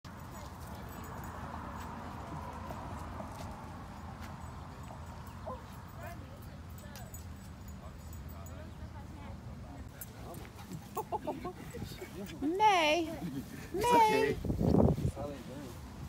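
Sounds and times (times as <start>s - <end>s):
faint distant voices: 0.1s - 16.0s.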